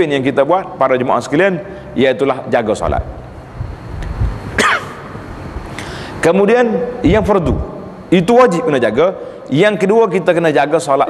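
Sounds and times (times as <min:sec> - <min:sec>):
room noise: 0:00.0 - 0:11.0
man clearing his throat: 0:04.6 - 0:05.0.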